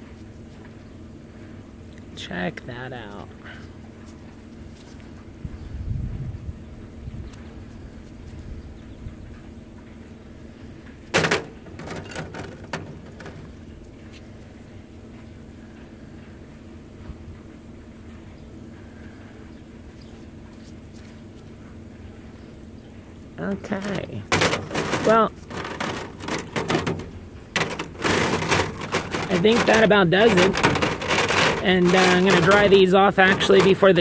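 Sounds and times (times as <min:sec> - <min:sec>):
steady low hum: 0:00.0 - 0:34.0
copper pieces knocking on mesh: 0:11.2 - 0:13.5, 0:24.2 - 0:34.0.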